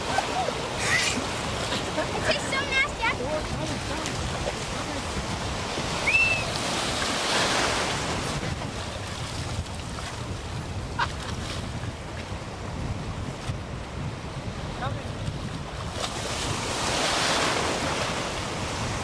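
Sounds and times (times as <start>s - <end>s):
ocean surf washing: 0.0s - 19.0s
wind rumbling on microphone: 0.0s - 19.0s.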